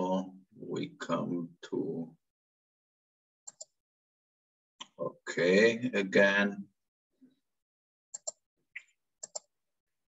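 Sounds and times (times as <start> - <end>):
computer mouse clicks: 3.5 - 3.8, 8.1 - 9.5.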